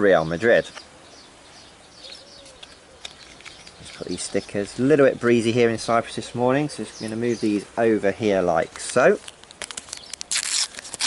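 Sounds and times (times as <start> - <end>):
wrapper crinkling: 8.8 - 11.0.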